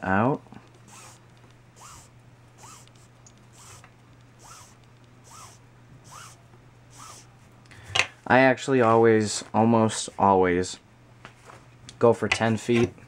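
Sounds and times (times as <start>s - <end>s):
cord rubbing through fingers: 0.7s - 7.4s.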